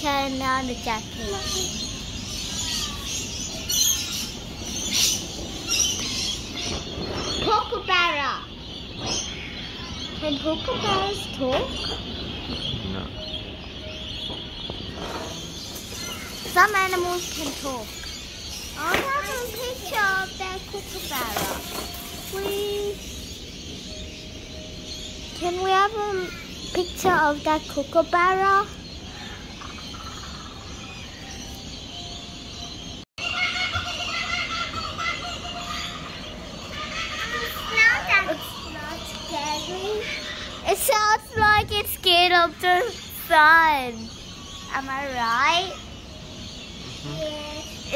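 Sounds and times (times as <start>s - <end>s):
child's voice: 0.0s - 3.3s, 7.4s - 8.6s, 9.8s - 11.9s, 16.4s - 18.0s, 18.8s - 23.1s, 25.3s - 28.8s, 36.8s - 45.9s, 47.0s - 47.9s
birds chirping: 0.0s - 47.9s
steady background noise: 0.0s - 47.9s
kookaburra laughing call: 33.2s - 37.6s.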